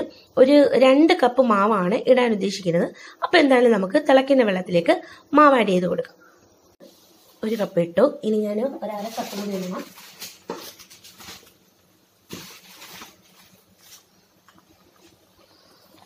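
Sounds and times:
person speaking: 0:07.4 - 0:10.1
faint rustling and scraping: 0:08.6 - 0:16.0.

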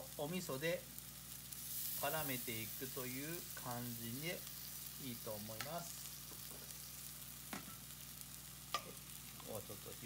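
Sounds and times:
food sizzling in a wok: 0:00.0 - 0:10.0.

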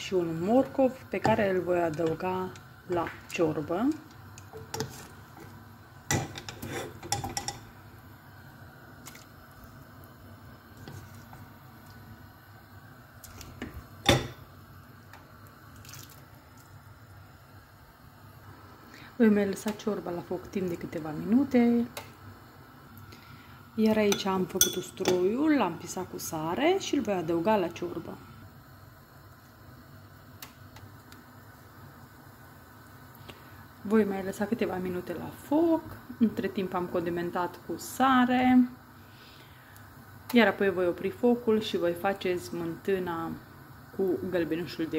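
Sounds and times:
wooden spoon scraping a saucepan: 0:03.9 - 0:05.6, 0:06.3 - 0:07.6, 0:10.8 - 0:11.4
metal spoon clicking on pan: 0:24.1 - 0:25.2.

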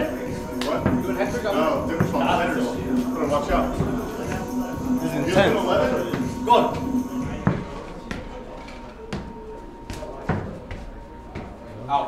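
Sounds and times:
soccer ball thuds: 0:07.2 - 0:08.3, 0:09.1 - 0:11.6.

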